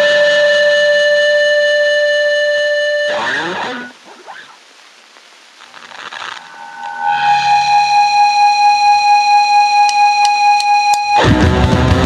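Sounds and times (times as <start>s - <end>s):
distorted electric guitar note: 0.0s - 4.6s, 6.0s - 12.0s
punk band playing: 11.2s - 12.0s.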